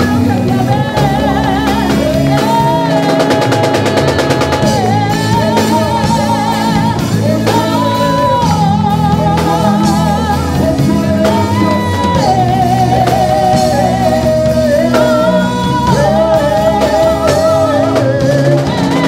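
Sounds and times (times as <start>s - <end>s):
group singing gospel with vibrato: 0.0s - 19.0s
guitar and band accompaniment: 0.0s - 19.0s.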